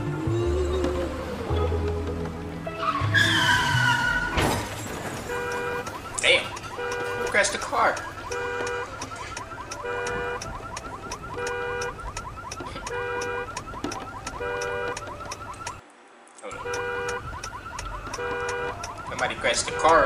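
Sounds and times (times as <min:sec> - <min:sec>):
car alarm whooping and beeping: 0:02.8 - 0:15.8, 0:16.5 - 0:20.0.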